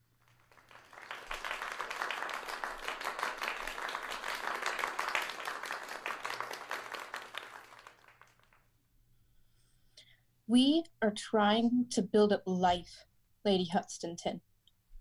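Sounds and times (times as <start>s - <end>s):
applause: 0.0s - 8.8s.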